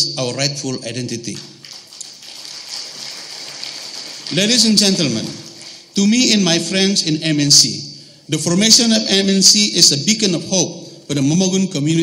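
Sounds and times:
distant applause: 1.7s - 5.9s.

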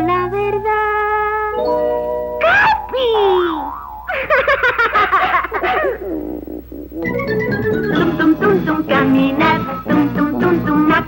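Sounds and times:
cartoon falling pitch glide: 2.4s - 4.9s
warbling chirping cartoon sounds: 2.4s - 8.4s.

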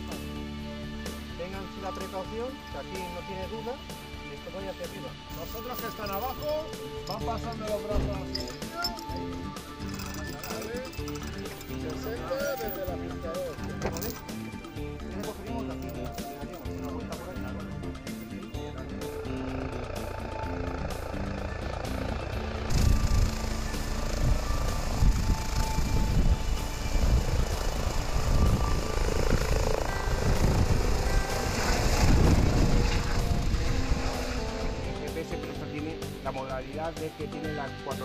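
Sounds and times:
background music: 0.0s - 38.0s
helicopter rotor noise: 4.4s - 35.4s.

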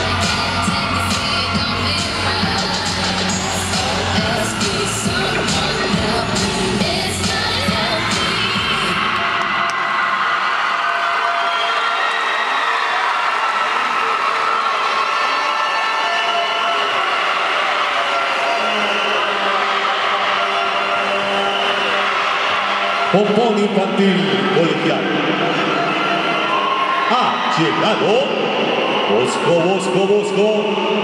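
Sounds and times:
crowd cheering and yelling: 0.0s - 31.0s.

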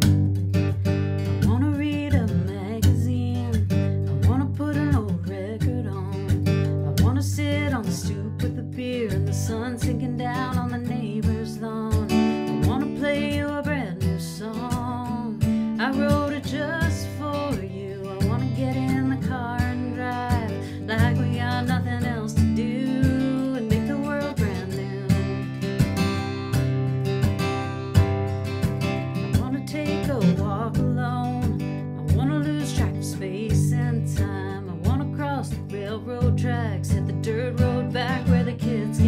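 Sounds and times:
acoustic guitar strummed: 0.0s - 39.0s
person singing folk song: 0.0s - 39.0s.

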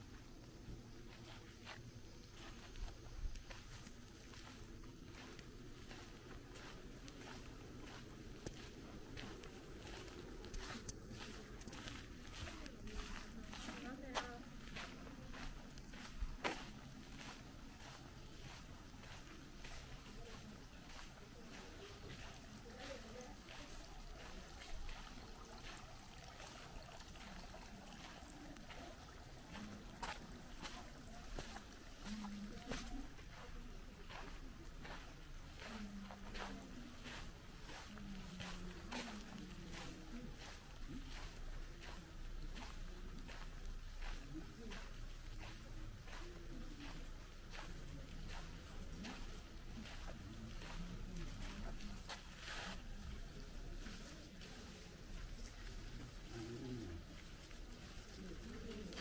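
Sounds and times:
footsteps crunching on gravel: 0.2s - 59.0s
distant people talking: 4.4s - 59.0s.

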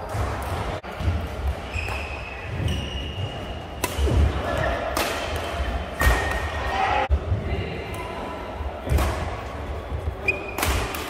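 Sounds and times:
shoe squeak: 1.6s - 3.8s, 10.2s - 10.6s
racquet hitting shuttlecock: 3.8s - 6.6s, 10.3s - 11.0s.

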